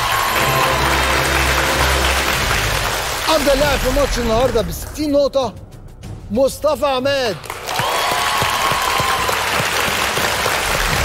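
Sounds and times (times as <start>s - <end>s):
held musical tone: 0.0s - 3.5s
audience applauding: 0.0s - 4.2s, 7.4s - 11.0s.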